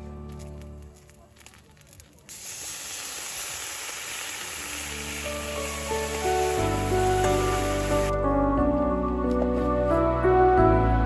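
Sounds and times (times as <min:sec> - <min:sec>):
soft music: 0:00.0 - 0:02.0, 0:04.7 - 0:11.0
skillet sizzling: 0:02.3 - 0:08.1.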